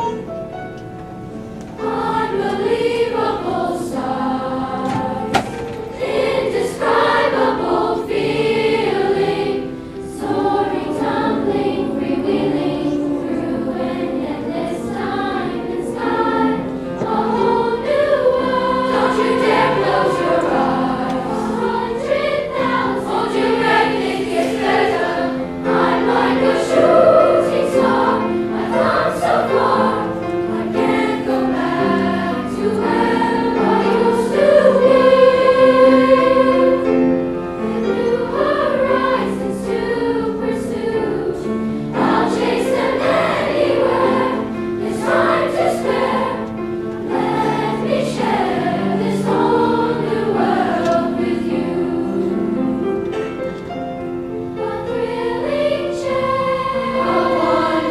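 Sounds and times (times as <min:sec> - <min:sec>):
children's choir singing: 0:00.0 - 0:57.9.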